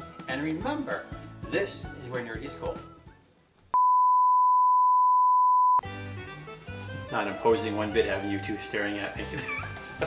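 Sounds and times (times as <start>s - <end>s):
pure test tone beep: 3.8s - 5.8s.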